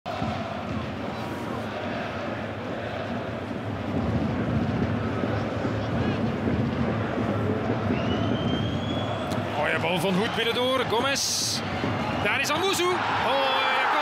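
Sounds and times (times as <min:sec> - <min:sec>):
stadium crowd voices: 0:00.1 - 0:14.0.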